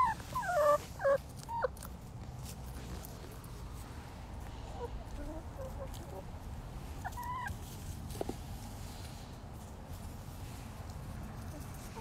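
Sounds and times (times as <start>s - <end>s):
hens clucking: 0.0s - 2.0s, 4.6s - 8.3s.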